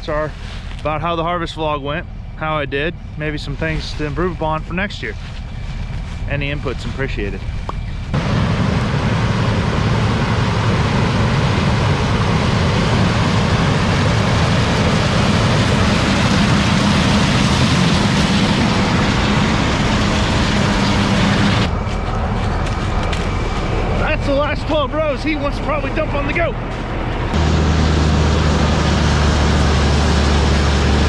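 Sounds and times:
combine harvester engine hum: 0:00.0 - 0:31.0.

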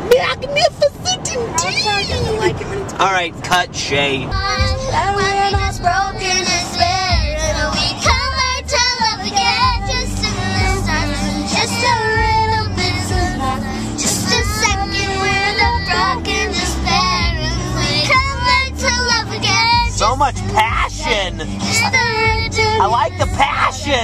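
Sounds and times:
car road rumble: 0:00.0 - 0:24.0
girls singing: 0:04.3 - 0:24.0.

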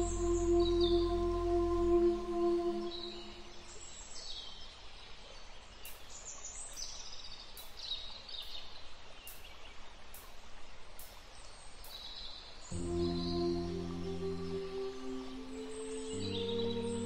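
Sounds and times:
steady outdoor hiss: 0:00.0 - 0:17.0
birds chirping: 0:12.7 - 0:17.0.

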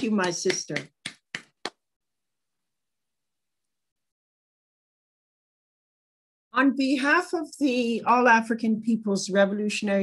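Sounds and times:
woman clapping hands: 0:00.0 - 0:01.8.

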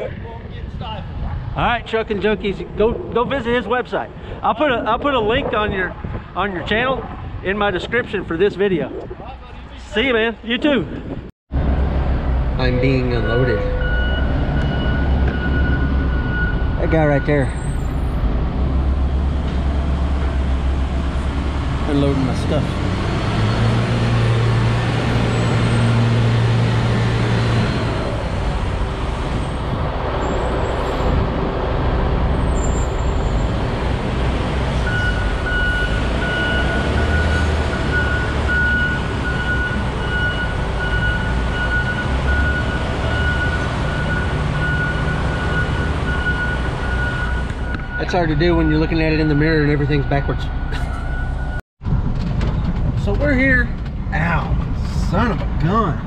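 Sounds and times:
heavy diesel engines droning: 0:10.9 - 0:56.0.

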